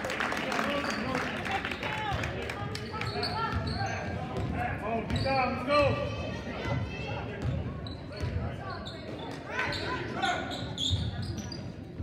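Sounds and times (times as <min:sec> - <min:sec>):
voices echoing in gym: 0:00.1 - 0:12.0.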